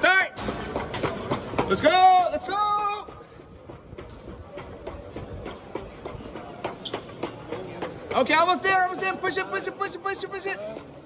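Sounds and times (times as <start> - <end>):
people's footsteps: 0.0 - 11.0
man shouting: 1.7 - 3.1.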